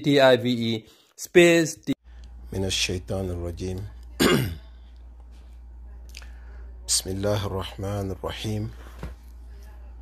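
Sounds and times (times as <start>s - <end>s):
faint low hum: 2.0s - 10.0s
man coughing: 4.2s - 4.7s.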